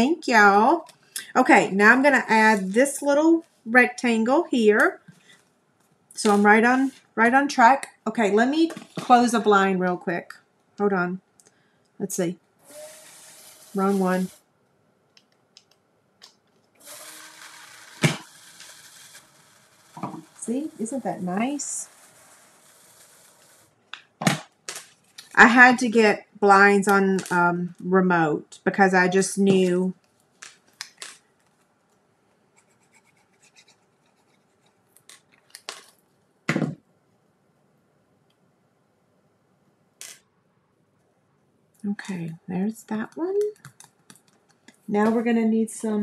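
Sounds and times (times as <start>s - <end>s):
electric blind motor humming: 12.6s - 14.4s, 16.8s - 23.8s
clicks and rustles of handling: 29.5s - 36.0s, 43.4s - 45.2s.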